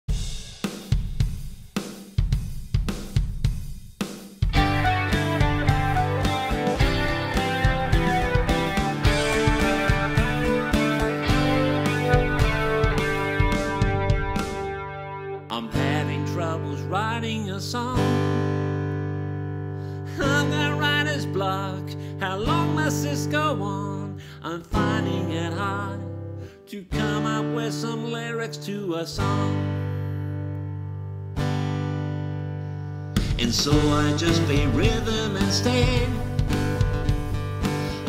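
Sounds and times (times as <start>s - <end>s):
drum kit playing: 0.0s - 15.4s, 33.2s - 38.0s
guitar and bass: 4.5s - 38.0s.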